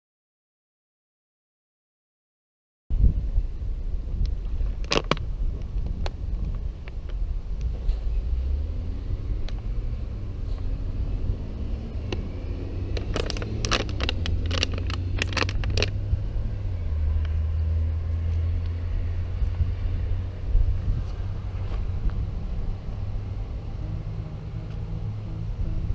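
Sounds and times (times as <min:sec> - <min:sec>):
steady low rumble: 0:02.9 - 0:25.9
clicking and rustling handling noise: 0:12.9 - 0:16.0.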